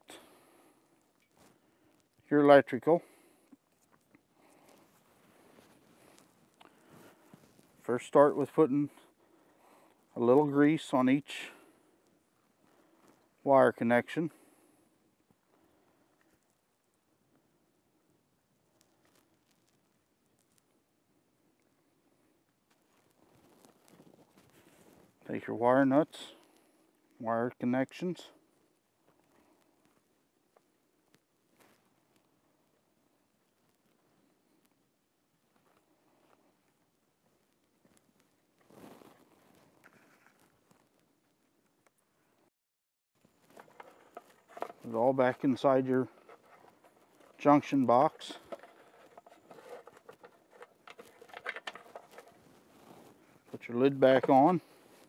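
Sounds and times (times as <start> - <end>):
small clicks and rustling of wires: 0.9 - 2.3, 3.5 - 7.8, 18.6 - 20.8, 22.5 - 25.3, 29.0 - 32.8, 35.4 - 42.1, 43.2 - 55.0
hands rustling wires: 22.7 - 25.2, 43.2 - 55.0.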